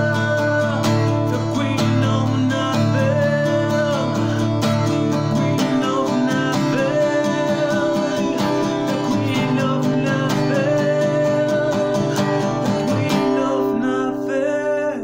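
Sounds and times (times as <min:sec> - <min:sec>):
acoustic guitar strumming: 0:00.0 - 0:15.0
man singing: 0:00.0 - 0:15.0.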